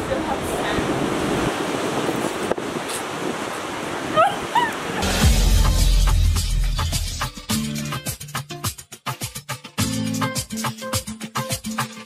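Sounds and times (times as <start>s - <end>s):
wind: 0.0s - 5.1s
sea surf: 0.0s - 7.2s
person squealing: 4.1s - 5.3s.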